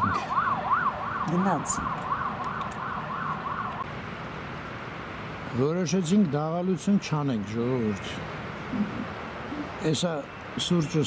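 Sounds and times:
siren yelping: 0.0 - 3.8.

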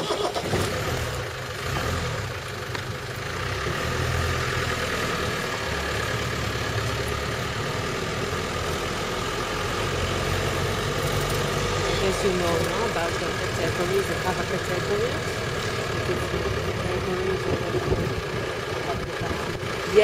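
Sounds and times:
road noise: 0.0 - 20.0
vehicle engine driving slowly: 0.0 - 20.0
wind noise: 17.4 - 18.2.

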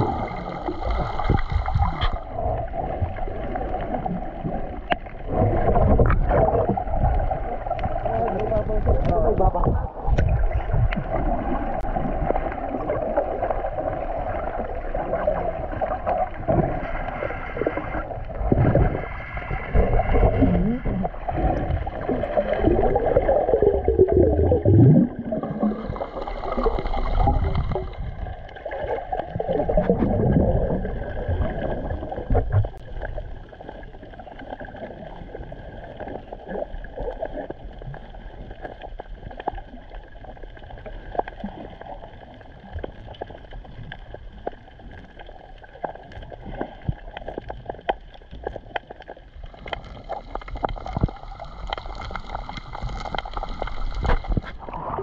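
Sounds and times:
underwater gurgling and bubbles: 0.0 - 55.0
underwater hiss: 25.8 - 28.3.

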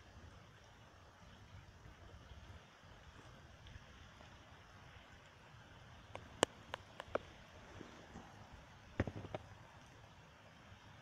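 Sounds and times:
heavy rain hiss: 0.0 - 11.0.

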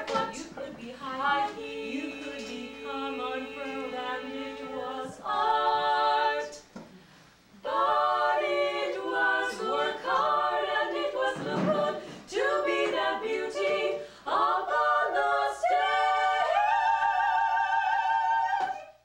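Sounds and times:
unaccompanied voices singing: 0.0 - 6.9, 7.5 - 19.0.

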